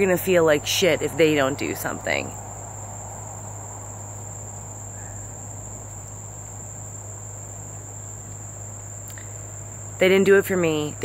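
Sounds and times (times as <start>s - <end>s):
crickets chirring: 0.0s - 11.0s
low steady hum: 0.0s - 11.0s.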